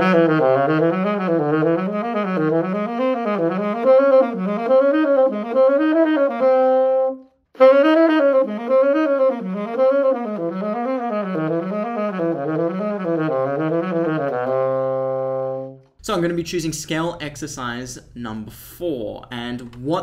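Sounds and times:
saxophone playing scale runs: 0.0 - 15.8.

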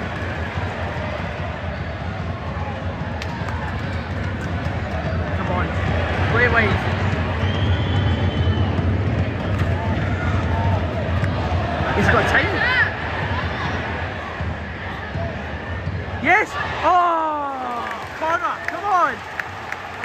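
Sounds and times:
spectators shouting: 0.0 - 20.0
stadium crowd hubbub: 0.0 - 20.0.

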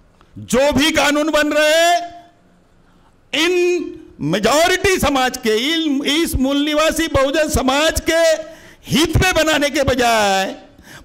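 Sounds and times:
man speaking into a microphone: 0.4 - 2.4, 3.3 - 10.8.

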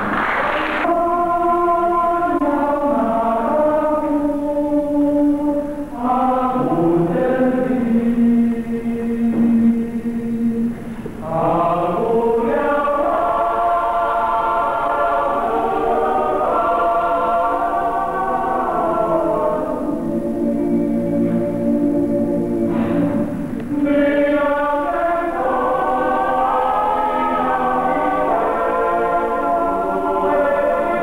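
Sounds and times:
male choir singing: 0.8 - 31.0.

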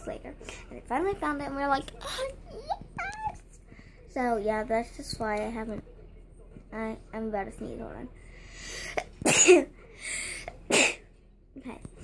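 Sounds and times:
girl sneezing: 10.7 - 11.0.

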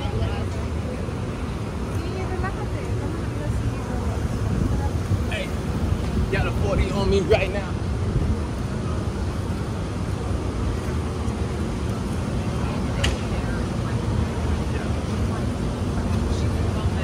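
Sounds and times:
distant traffic rumble: 0.0 - 17.0
faint voices of passersby: 0.0 - 17.0.

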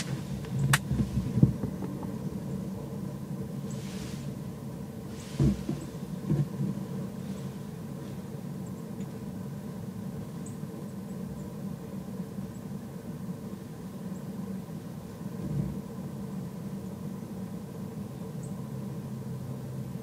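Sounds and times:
faint even hum: 0.0 - 20.0
low mechanical rumble: 0.0 - 20.0.

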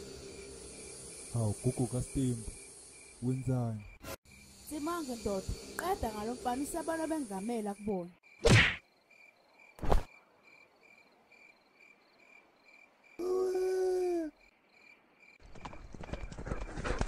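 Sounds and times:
cricket chirping: 0.0 - 17.0.

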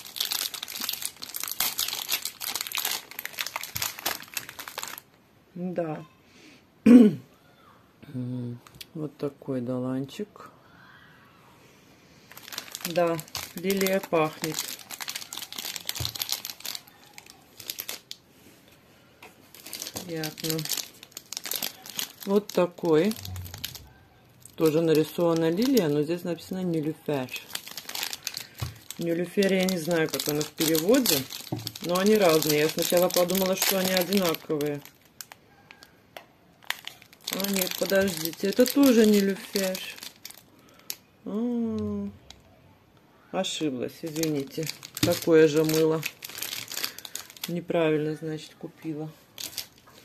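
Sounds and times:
plastic wrap crinkling: 0.0 - 5.2, 12.3 - 18.5, 19.3 - 35.9, 36.6 - 41.1, 43.9 - 48.2, 49.1 - 50.0.

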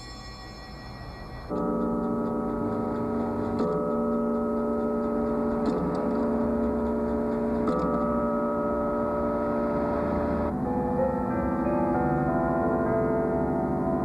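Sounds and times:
clock striking deep bells: 0.0 - 14.0.

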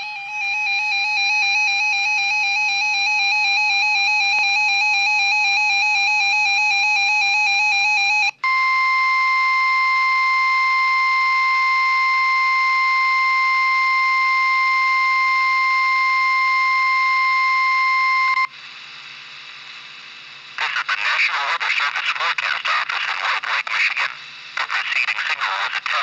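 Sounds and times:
steady alarm tone: 0.0 - 18.6
radio hiss: 19.8 - 26.0.

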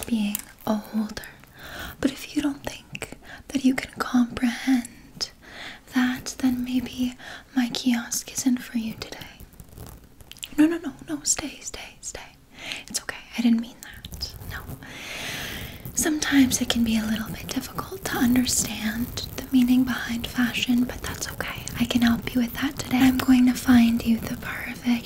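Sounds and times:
woman speaking softly: 0.0 - 1.3, 10.5 - 12.3, 16.0 - 25.0.

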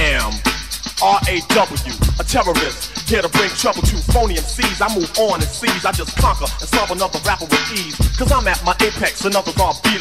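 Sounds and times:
heavy bass line: 0.0 - 10.0
rapping over a beat: 0.0 - 10.0.

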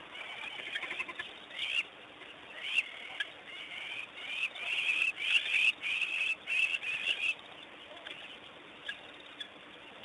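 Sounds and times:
wild dogs twittering: 0.1 - 9.6.

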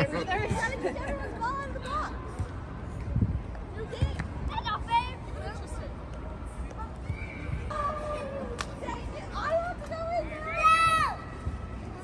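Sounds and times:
low wind rumble: 2.1 - 6.4.

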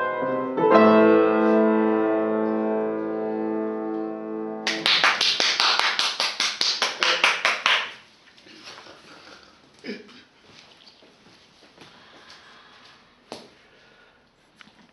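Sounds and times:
piano chord ringing: 0.0 - 4.8.

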